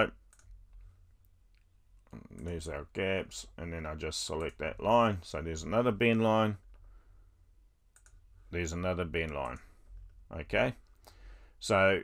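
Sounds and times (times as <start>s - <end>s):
computer mouse clicks: 0.2s - 0.9s, 7.9s - 8.2s.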